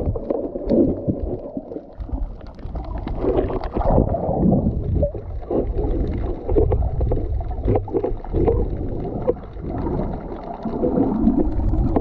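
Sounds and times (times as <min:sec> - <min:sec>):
bubbling gurgles: 0:00.0 - 0:12.0
underwater rumble of moving water: 0:00.0 - 0:12.0.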